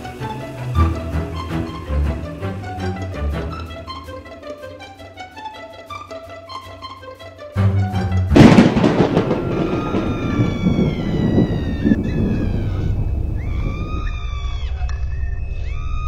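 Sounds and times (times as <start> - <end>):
low musical drone: 0.0 - 9.9
thunderclap rolling into rumble: 8.4 - 14.6
gliding howls: 8.8 - 16.0.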